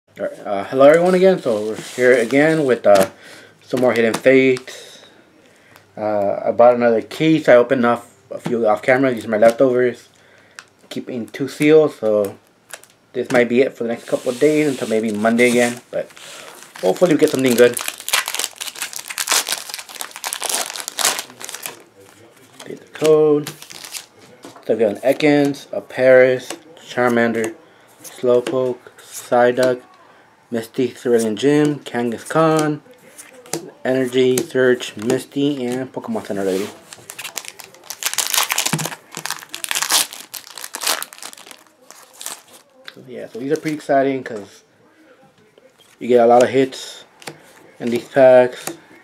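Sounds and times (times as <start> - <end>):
foil wrapper crinkling: 14.1 - 24.1, 36.4 - 42.8.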